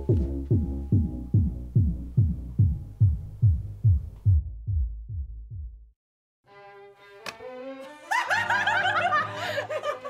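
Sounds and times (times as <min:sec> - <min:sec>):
young woman laughing hard: 0:08.1 - 0:10.0.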